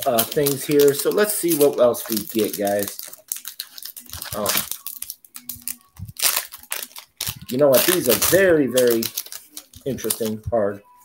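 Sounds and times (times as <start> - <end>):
foil wrapper tearing and crinkling: 0.0 - 10.4.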